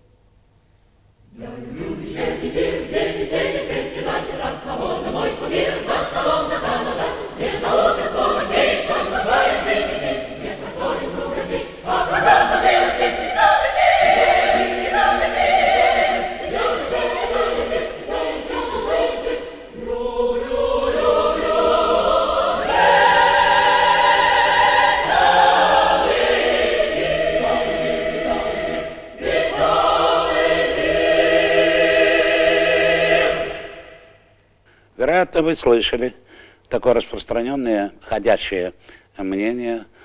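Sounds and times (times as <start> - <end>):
mixed choir singing in harmony: 1.3 - 34.3.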